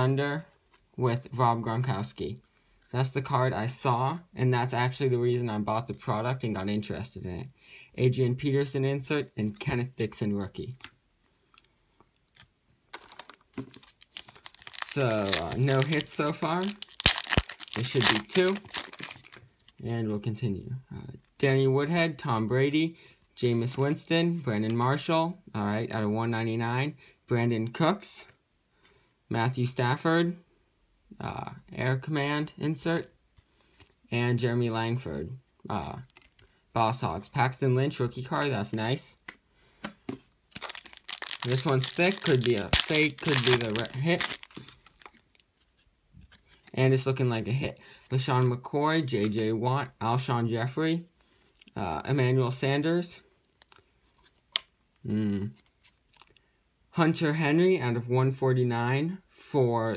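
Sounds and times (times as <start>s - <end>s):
foil wrapper crinkling: 12.9s - 19.8s, 40.5s - 45.5s.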